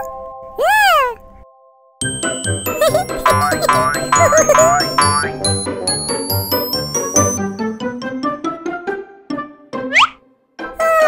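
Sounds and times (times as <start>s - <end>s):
cartoon cat meow: 0.6s - 1.2s
held music chord: 1.6s - 9.7s.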